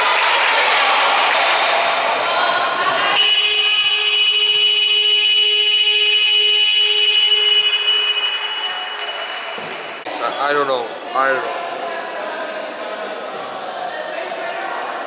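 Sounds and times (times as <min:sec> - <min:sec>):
scoreboard buzzer: 0:03.2 - 0:08.7.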